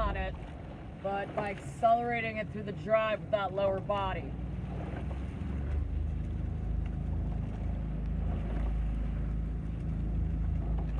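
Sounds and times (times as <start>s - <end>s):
outboard motor running: 0.0s - 10.9s.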